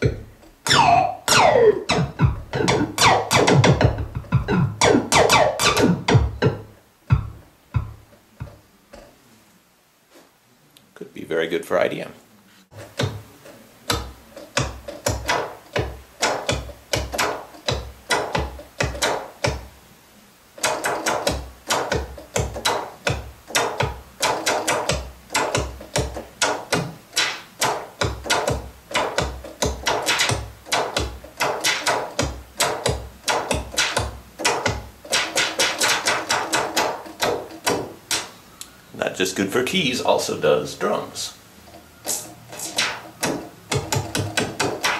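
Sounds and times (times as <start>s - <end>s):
synthesizer percussive hits: 0.0s - 8.6s, 42.0s - 44.9s.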